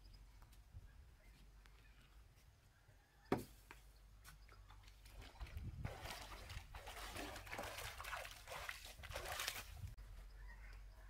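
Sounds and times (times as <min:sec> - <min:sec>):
muddy water sloshing and splashing: 0:04.5 - 0:10.0.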